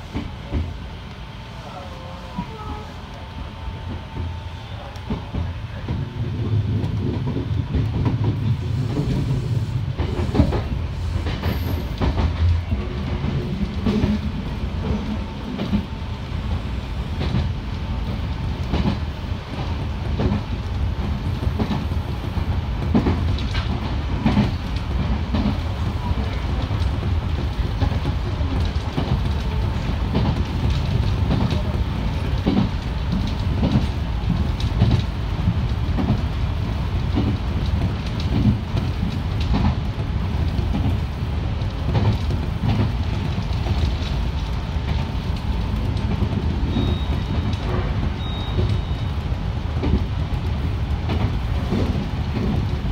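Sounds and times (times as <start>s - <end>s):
train rumbling: 0.0s - 52.9s.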